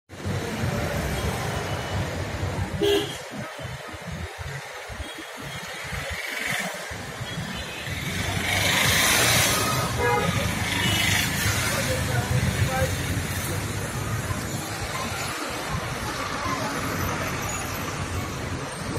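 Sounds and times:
passing vehicles: 0:00.1 - 0:18.9
vehicle engines running: 0:03.7 - 0:18.9.

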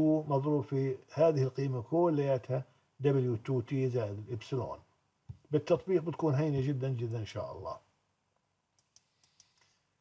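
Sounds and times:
faint computer mouse clicks: 0:08.8 - 0:09.8.

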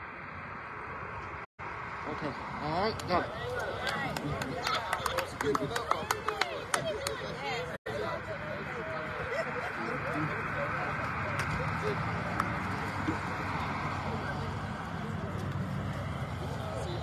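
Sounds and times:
indistinct group chatter: 0:02.8 - 0:17.0.

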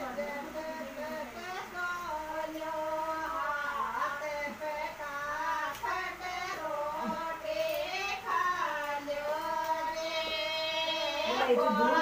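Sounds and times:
person singing slow song: 0:00.0 - 0:12.0.

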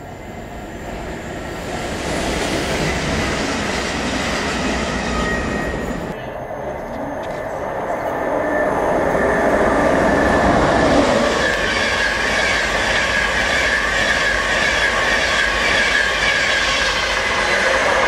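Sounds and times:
electric train passing at speed: 0:00.0 - 0:18.0.

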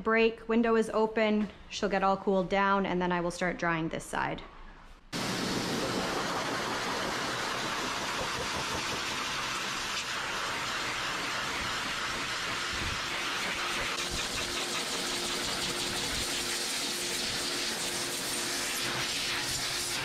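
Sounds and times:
pet dryer blasting air: 0:05.2 - 0:20.0.

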